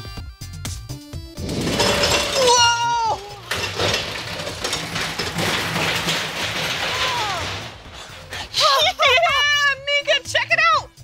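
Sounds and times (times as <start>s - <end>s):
roller coaster rumbling on track: 3.1s - 9.0s.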